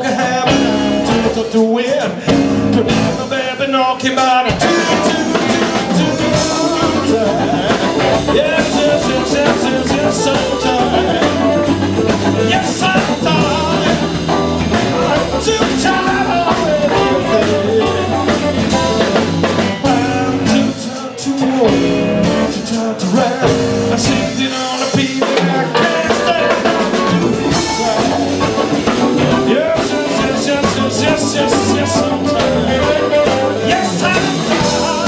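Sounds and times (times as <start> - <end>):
blues band playing: 0.0 - 35.0
man singing: 0.0 - 35.0.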